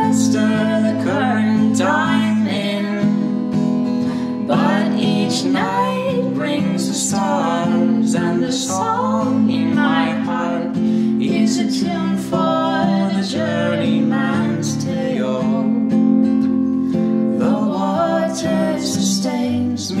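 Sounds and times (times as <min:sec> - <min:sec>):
man and woman singing: 0:00.0 - 0:16.1, 0:17.2 - 0:20.0
acoustic guitar playing folk: 0:00.0 - 0:20.0.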